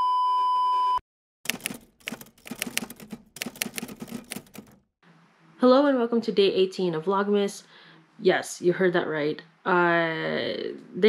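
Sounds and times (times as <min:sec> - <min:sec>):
typewriter key clacks: 0:01.5 - 0:04.8.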